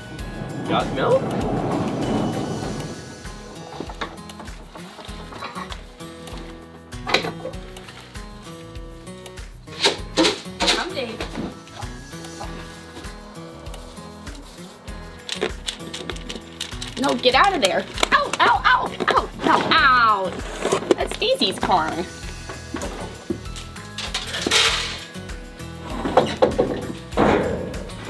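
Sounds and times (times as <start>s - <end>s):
noisy rumble: 0.0s - 5.4s
background music with steady beat: 0.0s - 28.0s.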